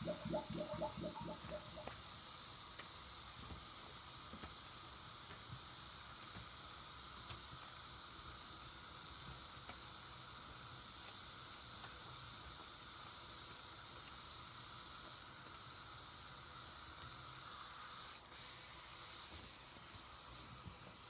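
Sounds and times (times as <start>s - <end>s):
soap bubbles fizzing and popping: 0.0s - 2.1s.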